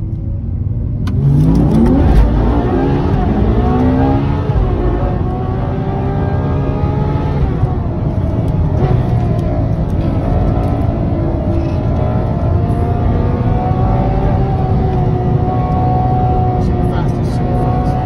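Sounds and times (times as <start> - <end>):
car engine accelerating from inside: 0.1 - 18.0.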